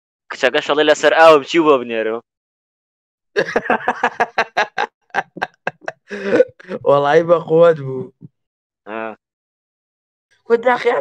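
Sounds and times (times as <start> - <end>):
person laughing: 3.4 - 7.1.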